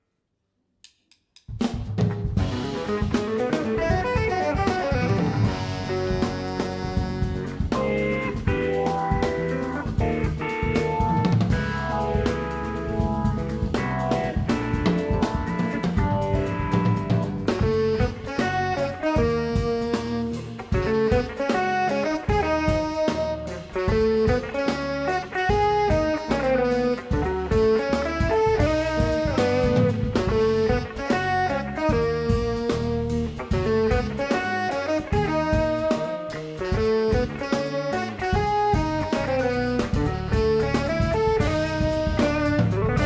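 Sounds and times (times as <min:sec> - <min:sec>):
drum kit: 0:00.9 - 0:43.0
electric bass: 0:01.5 - 0:43.0
electric guitar: 0:02.0 - 0:43.0
saxophone: 0:02.4 - 0:43.0.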